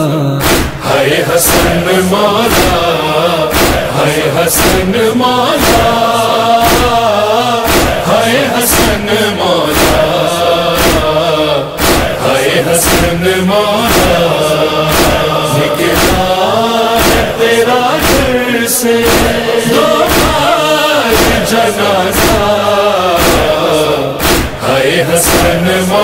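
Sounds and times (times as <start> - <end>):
male lead reciter chanting: 0.0 - 26.0
male backing chorus chanting: 0.1 - 26.0
steady beat: 0.4 - 26.0.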